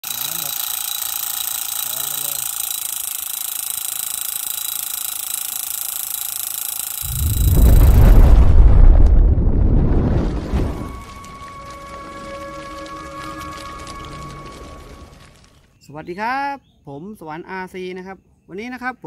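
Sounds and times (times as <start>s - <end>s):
model tractor motor whining: 0.0s - 7.1s
deep rumbling whoosh: 7.1s - 12.5s.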